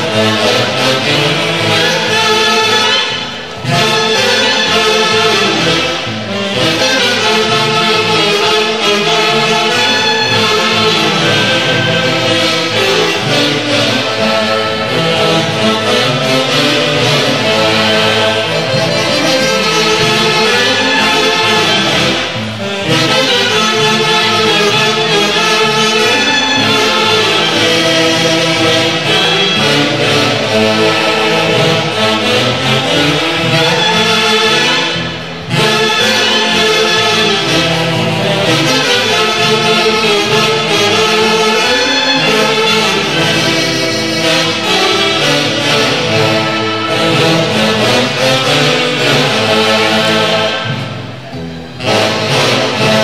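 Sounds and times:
clarinets and saxophones melody: 0:00.0 - 0:53.0.

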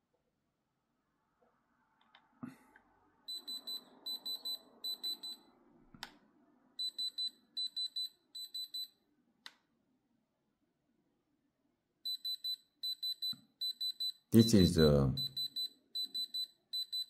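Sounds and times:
gem tester beeping: 0:03.3 - 0:05.6, 0:06.8 - 0:09.0, 0:12.1 - 0:17.0.

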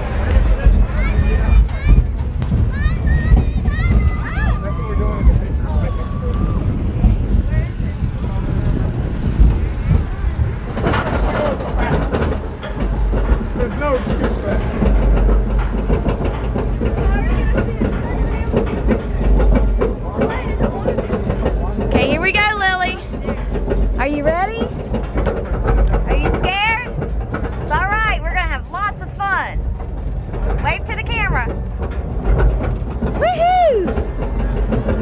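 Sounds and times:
roller coaster rumbling on track: 0:00.0 - 0:35.0.

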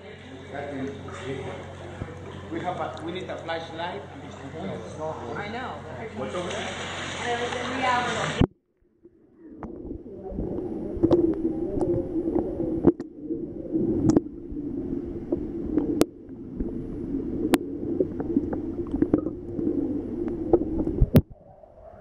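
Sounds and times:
underwater hum and gurgle: 0:00.0 - 0:22.0.

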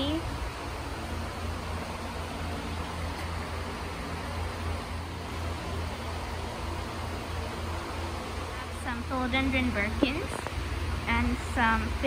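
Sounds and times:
ventilation hum and hiss: 0:00.0 - 0:12.0.

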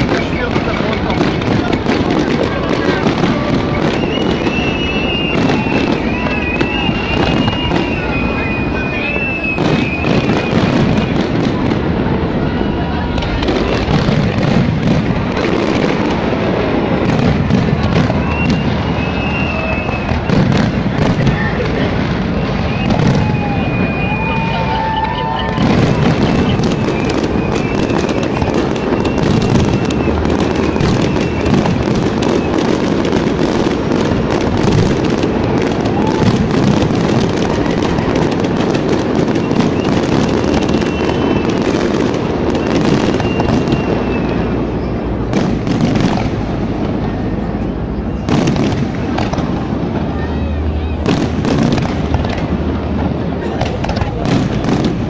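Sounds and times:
firework whistles: 0:00.0 - 0:52.8
fireworks bangs and crackles: 0:00.0 - 0:55.0.

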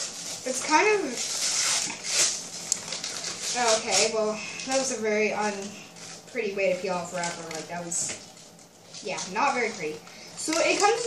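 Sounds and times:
paper wrapper rustling and tearing: 0:00.0 - 0:11.0
sharp paper crackle: 0:00.0 - 0:11.0.

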